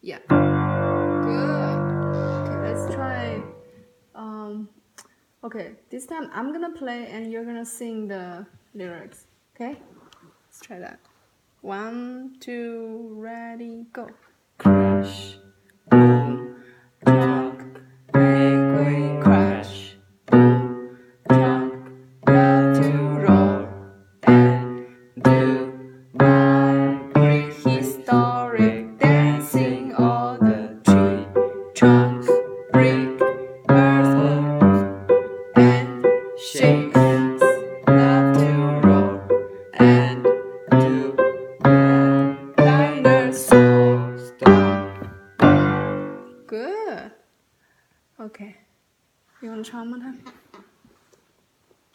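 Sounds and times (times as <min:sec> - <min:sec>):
piano playing slow heavy chords: 0:00.3 - 0:03.8, 0:14.6 - 0:46.4.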